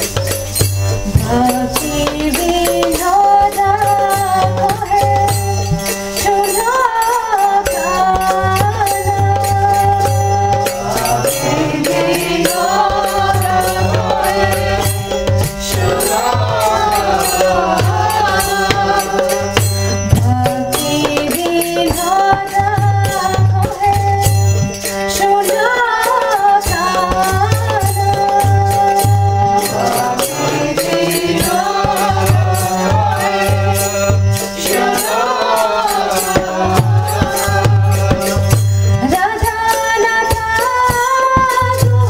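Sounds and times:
hand cymbals struck: 0:00.0 - 0:42.0
harmonium: 0:00.0 - 0:42.0
held keyboard chord: 0:00.0 - 0:42.0
group devotional singing: 0:01.1 - 0:05.2, 0:06.3 - 0:23.9, 0:25.2 - 0:42.0.

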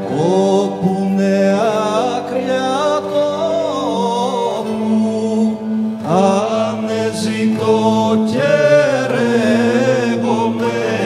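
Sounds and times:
man singing ornamented melody: 0:00.0 - 0:11.0.

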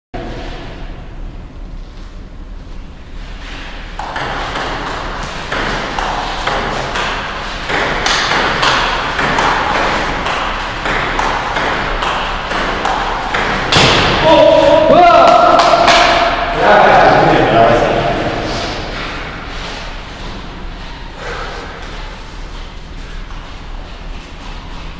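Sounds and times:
person calling out loudly: 0:14.2 - 0:15.9.

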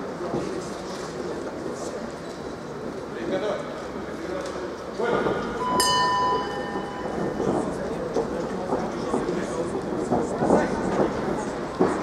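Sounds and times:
crowd chatter and shouting: 0:00.0 - 0:12.0
ring bell struck: 0:05.6 - 0:07.5.

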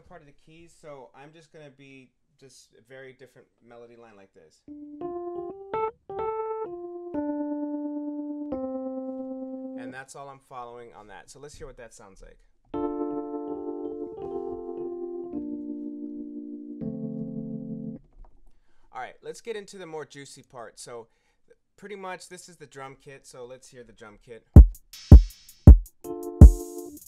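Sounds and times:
electric piano chord: 0:04.7 - 0:09.9, 0:12.8 - 0:18.0, 0:26.1 - 0:27.0
single-note keyboard melody: 0:04.7 - 0:09.9, 0:12.8 - 0:18.0, 0:26.0 - 0:27.0.

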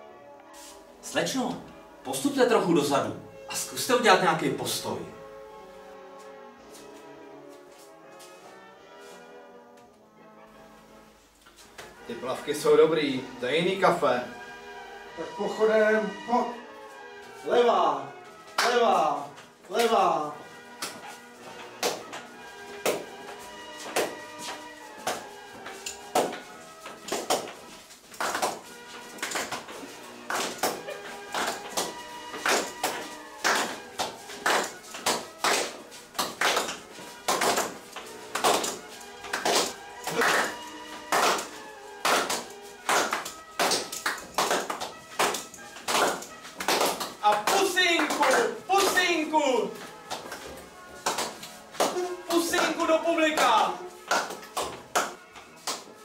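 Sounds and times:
background music: 0:00.0 - 0:56.0
footsteps marching on hard floor: 0:19.3 - 0:56.0
person speaking: 0:47.2 - 0:49.9, 0:51.9 - 0:54.0.

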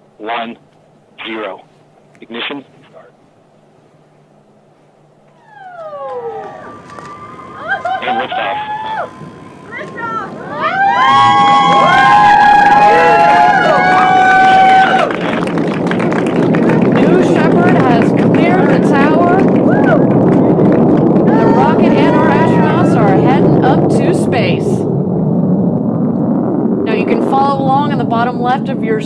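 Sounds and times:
rocket engine rumble: 0:00.0 - 0:29.0
onlookers cheering and whooping: 0:05.4 - 0:23.2.

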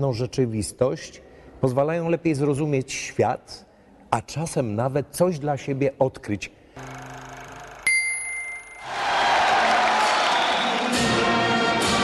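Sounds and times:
bright bell ding: 0:07.9 - 0:08.9.

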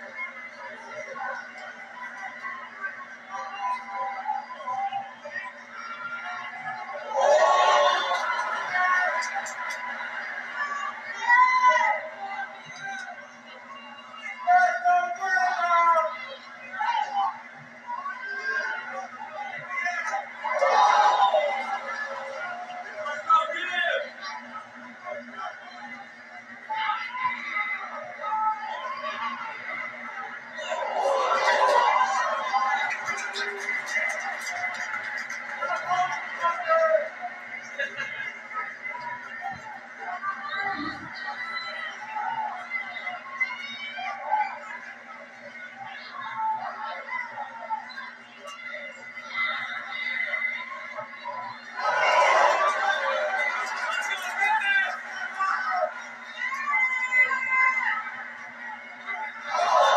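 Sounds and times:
arena crowd noise: 0:00.0 - 0:59.9
commentary voices: 0:00.0 - 0:59.9.

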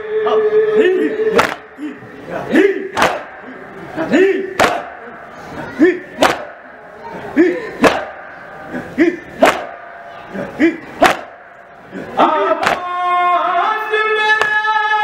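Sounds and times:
man singing long melody: 0:00.0 - 0:02.0
group chanted cries: 0:00.0 - 0:14.6
men beating their chests: 0:01.3 - 0:02.0, 0:02.6 - 0:03.6, 0:04.2 - 0:05.1, 0:05.8 - 0:06.7, 0:07.8 - 0:08.3, 0:08.9 - 0:11.6, 0:12.5 - 0:13.0.

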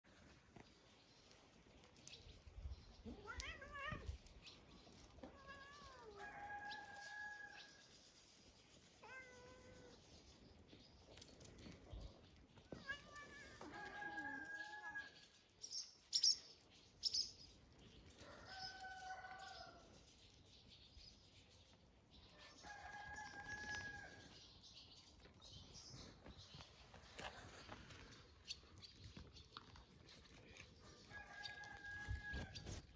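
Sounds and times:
cat meowing: 0:03.1 - 0:04.2, 0:09.0 - 0:09.9
rooster crowing faintly: 0:13.5 - 0:15.1.

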